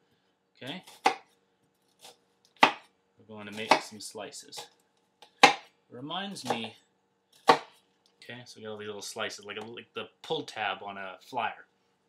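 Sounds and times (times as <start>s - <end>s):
knife chopping onion on cutting board: 0.8s - 1.3s, 2.0s - 2.9s, 3.5s - 4.0s, 5.3s - 5.7s, 6.4s - 6.7s, 7.4s - 7.8s.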